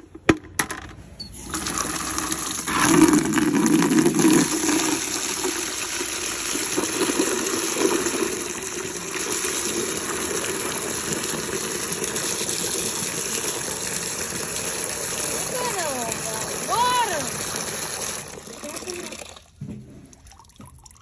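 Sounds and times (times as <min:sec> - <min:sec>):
water pouring into plastic bucket: 0:01.4 - 0:21.0.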